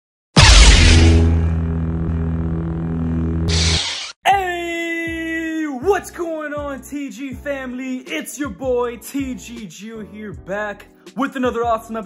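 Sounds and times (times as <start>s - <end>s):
opening hit: 0.4s - 1.6s
short whoosh: 0.4s - 1.6s
low droning hum: 0.4s - 3.9s.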